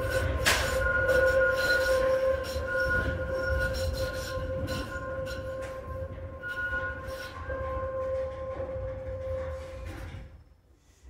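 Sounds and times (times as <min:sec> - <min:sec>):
high-pitched squealing tones: 0:00.0 - 0:09.6
tram wheels rumbling on rail: 0:00.0 - 0:11.0.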